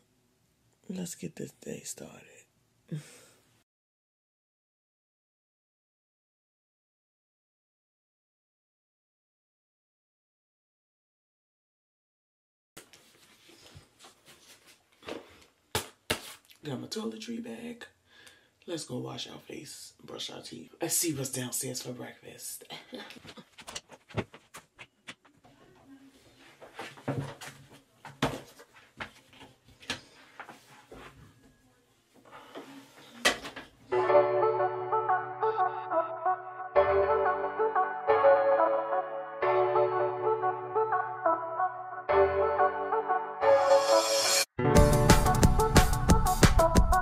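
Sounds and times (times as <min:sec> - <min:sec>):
woman speaking: 0:00.9 - 0:03.0
background music: 0:33.9 - 0:47.0.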